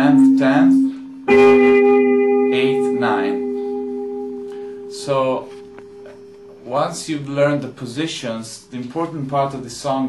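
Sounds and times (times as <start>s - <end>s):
guitar arpeggio: 0.0s - 6.6s.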